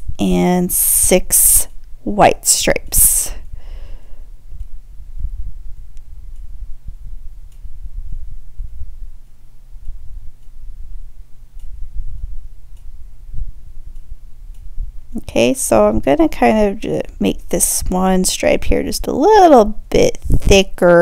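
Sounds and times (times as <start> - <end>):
low room hum and rumble: 0.0 - 21.0.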